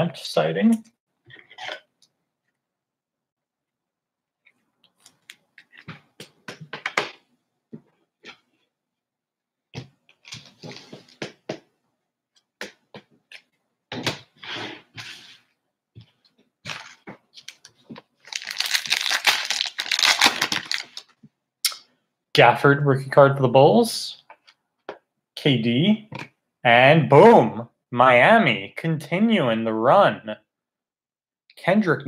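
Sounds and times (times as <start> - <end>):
foil wrappers crinkling and tearing: 16.7 - 21.1.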